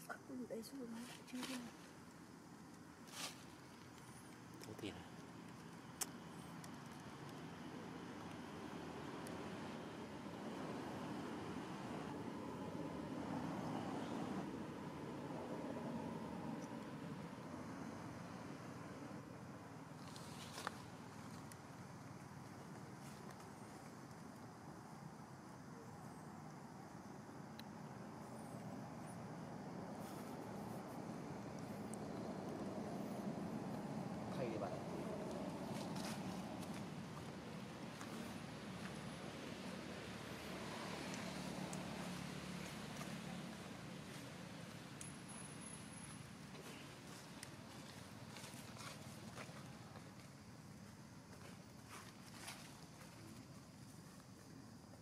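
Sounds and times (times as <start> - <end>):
low outdoor background rumble: 0.0 - 55.0.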